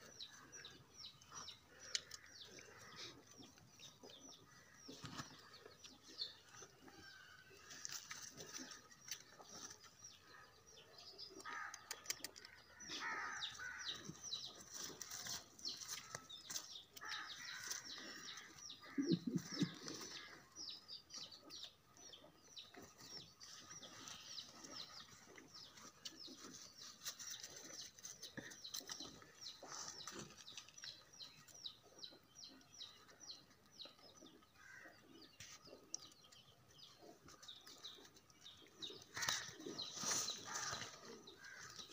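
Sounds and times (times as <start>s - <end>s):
birds chirping: 0.0s - 41.9s.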